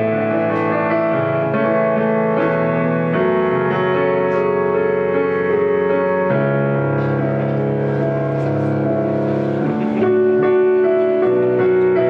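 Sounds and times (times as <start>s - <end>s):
electronic keyboard chords: 0.0s - 12.0s.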